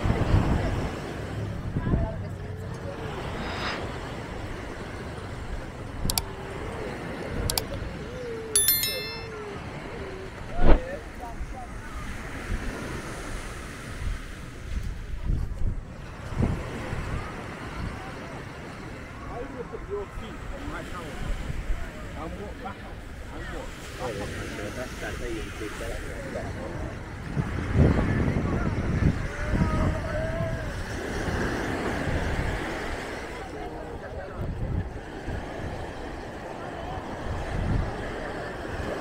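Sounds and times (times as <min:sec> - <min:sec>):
wavering pitched tone: 0:08.6 - 0:09.4.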